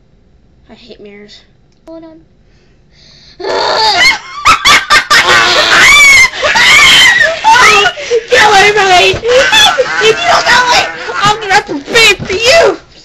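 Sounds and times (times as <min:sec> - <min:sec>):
young voices screaming: 0:03.4 - 0:12.6
laughter: 0:03.9 - 0:08.5.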